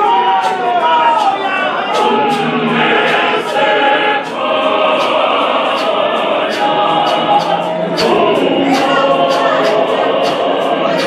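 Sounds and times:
congregation singing: 0.0s - 11.0s
regular sharp beat: 0.0s - 11.0s.

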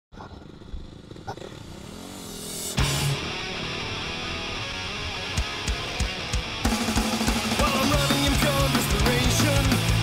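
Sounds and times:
motorcycle engines idling: 0.2s - 10.0s.

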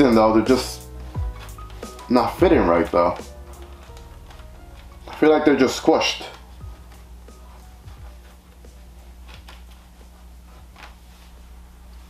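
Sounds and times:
hands rustling on helmet: 0.0s - 12.0s
steady low hum: 0.0s - 12.0s.

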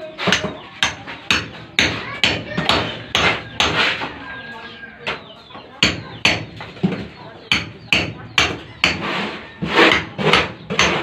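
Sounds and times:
hammer striking hard surface: 0.2s - 4.0s, 5.8s - 11.0s.

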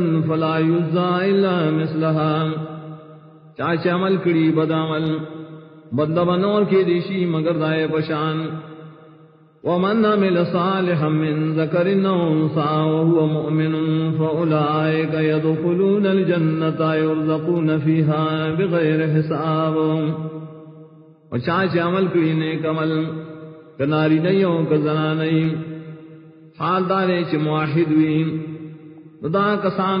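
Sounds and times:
man chanting: 0.0s - 9.0s, 9.6s - 20.7s, 21.3s - 30.0s.

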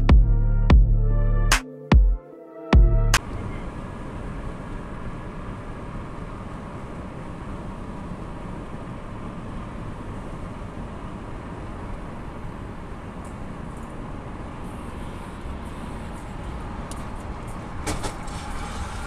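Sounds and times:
electronic music: 0.0s - 3.3s
road and tyre noise in car: 3.2s - 19.0s.

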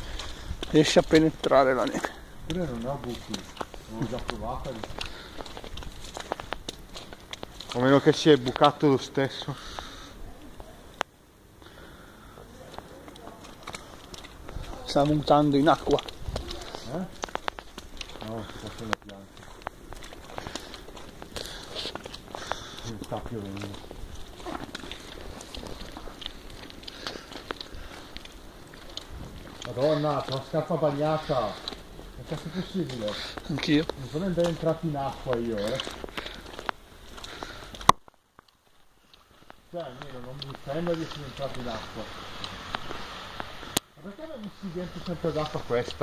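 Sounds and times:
footsteps in wet snow: 0.0s - 11.0s, 11.7s - 46.0s.

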